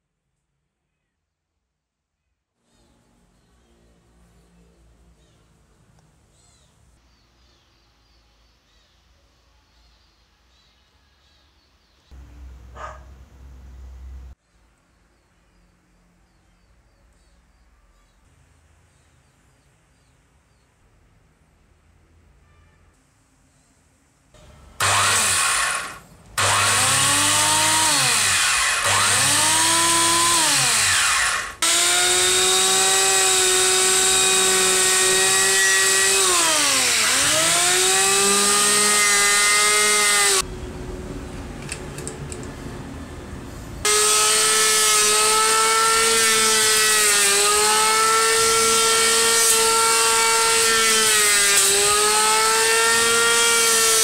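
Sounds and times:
electric hand planer motor whining: 0:24.8 - 0:40.4, 0:43.9 - 0:54.0.

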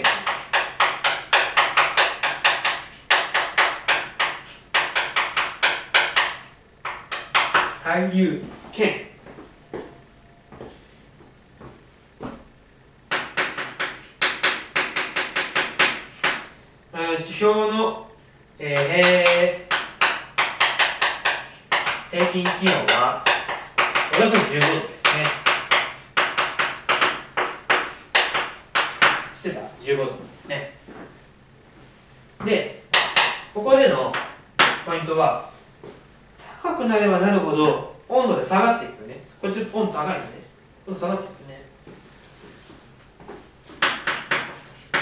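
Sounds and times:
chalk tapping and scratching: 0:00.0 - 0:07.8, 0:13.1 - 0:16.5, 0:18.7 - 0:29.3, 0:42.4 - 0:45.0.

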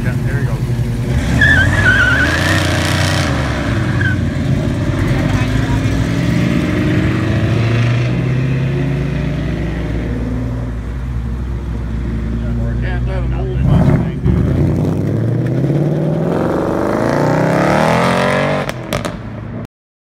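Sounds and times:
car engines revving: 0:00.0 - 0:19.6.

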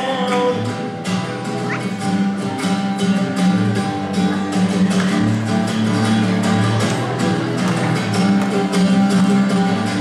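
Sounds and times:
acoustic guitars strummed: 0:00.0 - 0:10.0
high vocal yelp: 0:01.4 - 0:02.2.

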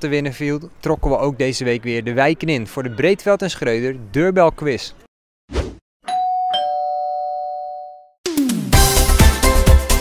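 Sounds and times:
two-note doorbell chime: 0:06.1 - 0:08.1.

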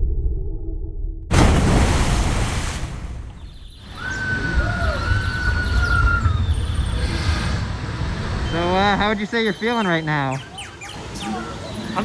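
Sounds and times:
low rush of water and air: 0:01.3 - 0:06.4.

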